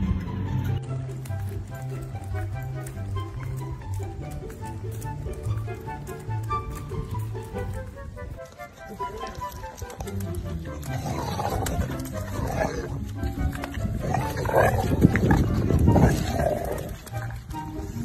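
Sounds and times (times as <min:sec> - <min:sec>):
background music: 0:00.0 - 0:18.0
dog growling: 0:10.7 - 0:17.3.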